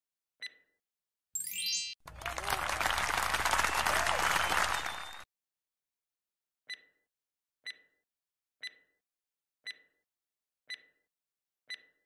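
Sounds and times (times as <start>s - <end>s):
crowd cheering and shouts: 2.0s - 5.2s
crowd clapping: 2.0s - 5.3s.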